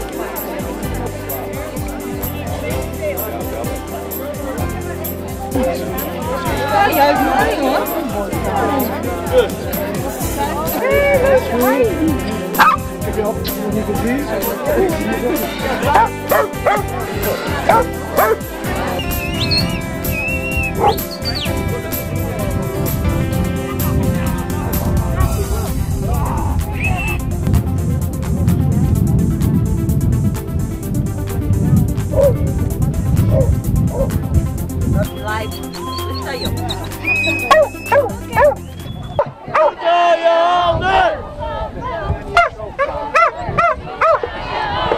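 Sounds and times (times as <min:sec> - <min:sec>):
music with held notes: 0:00.0 - 0:39.1
dog barking: 0:12.6 - 0:12.8, 0:15.9 - 0:16.8, 0:17.7 - 0:18.4, 0:20.8 - 0:21.0, 0:32.2 - 0:32.4, 0:37.5 - 0:38.6, 0:39.5 - 0:39.8, 0:42.4 - 0:44.2.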